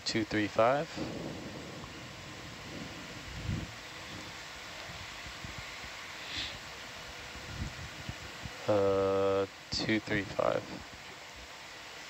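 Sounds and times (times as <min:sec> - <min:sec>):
open microphone hiss: 0:00.0 - 0:12.0
faint low thump: 0:01.0 - 0:04.3
brief soft hiss: 0:06.2 - 0:06.6.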